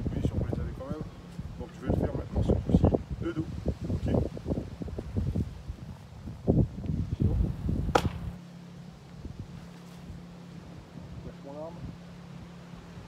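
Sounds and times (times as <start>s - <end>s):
fist slapping palm: 7.9s - 8.2s.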